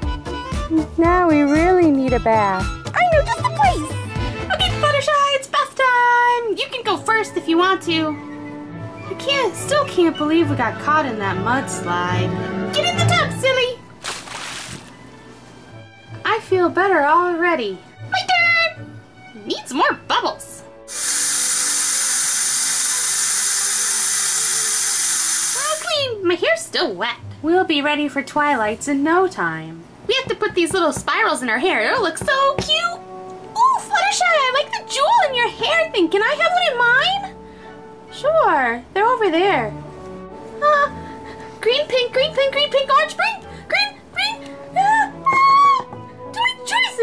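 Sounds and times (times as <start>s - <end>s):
quiet background music: 0.0s - 47.0s
tap water pouring into bath: 14.0s - 15.0s.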